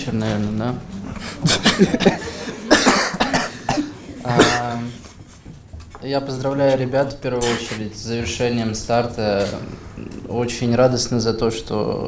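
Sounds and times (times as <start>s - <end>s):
man coughing: 1.4s - 4.9s
man clearing throat: 1.5s - 4.9s, 7.4s - 7.8s.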